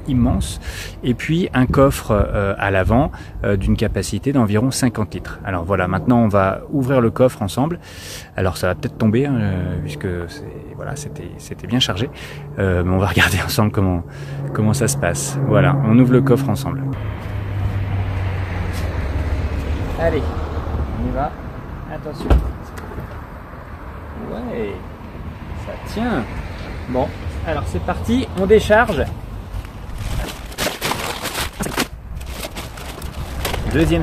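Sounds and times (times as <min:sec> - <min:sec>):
low rumble: 0:29.1 - 0:34.0
plastic bag crinkling and scraping: 0:29.8 - 0:34.0.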